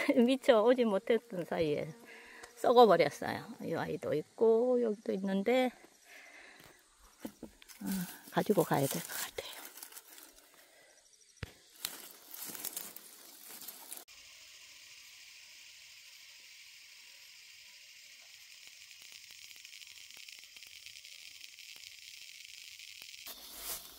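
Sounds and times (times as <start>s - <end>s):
crickets trilling: 0.0s - 23.9s.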